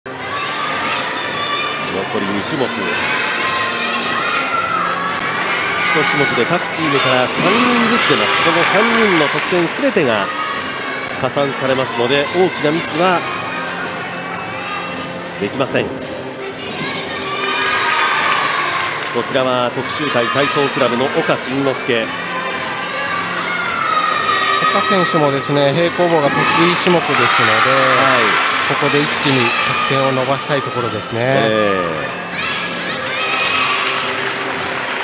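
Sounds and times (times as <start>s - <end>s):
crowd shouting and cheering: 0.1s - 35.0s.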